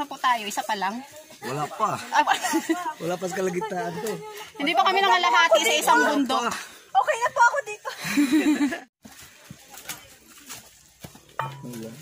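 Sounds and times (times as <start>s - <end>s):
footsteps on dry leaves: 9.0s - 12.0s.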